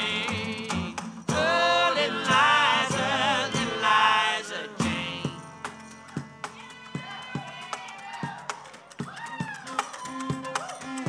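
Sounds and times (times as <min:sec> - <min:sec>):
live acoustic band playing: 0:00.0 - 0:07.9, 0:08.7 - 0:11.0
sharp percussive hits: 0:04.8 - 0:11.0.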